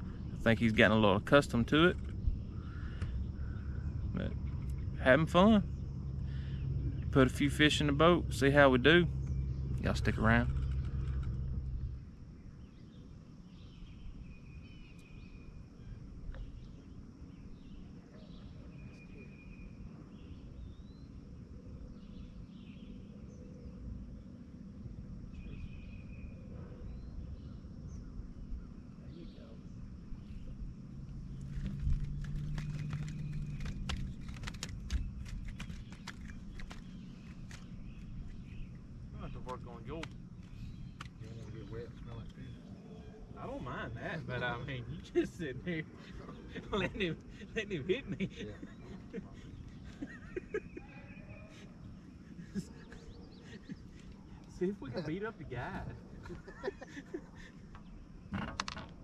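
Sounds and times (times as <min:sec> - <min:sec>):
bird calling: 0:00.0 - 0:24.2, 0:25.3 - 0:58.3
wind and water rumble: 0:00.0 - 0:59.0
clicks and knocks of gear: 0:31.4 - 0:38.4.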